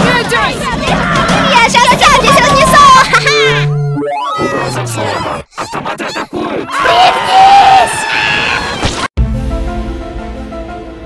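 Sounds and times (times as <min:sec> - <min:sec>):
cartoon voices shouting together: 0:00.8 - 0:08.6.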